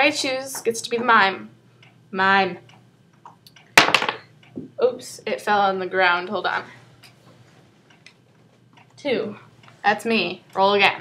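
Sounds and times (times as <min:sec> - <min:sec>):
clock ticking faintly: 0:01.8 - 0:02.0, 0:07.8 - 0:11.0.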